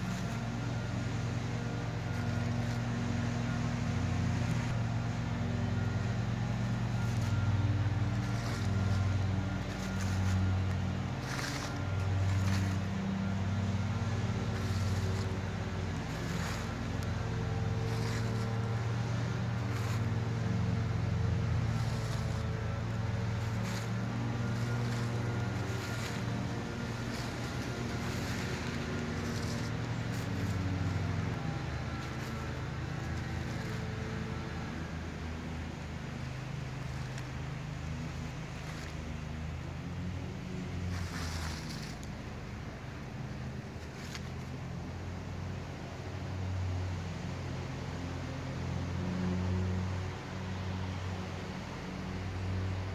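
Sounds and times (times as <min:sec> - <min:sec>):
low motor drone: 0:00.0 - 0:52.9.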